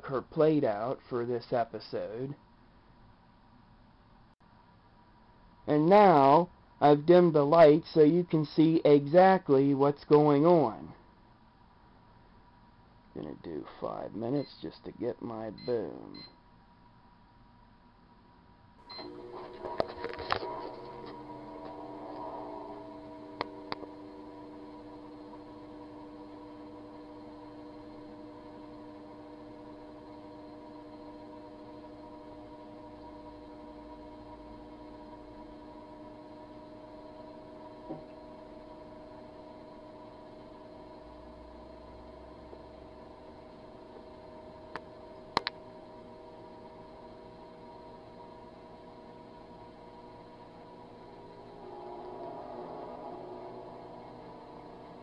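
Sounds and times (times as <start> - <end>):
microwave oven humming: 18.8 - 55.0.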